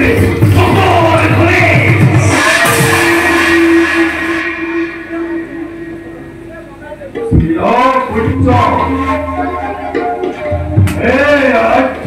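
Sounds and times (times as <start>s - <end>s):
drumming: 0.0s - 12.0s
cymbal ringing: 2.2s - 6.6s.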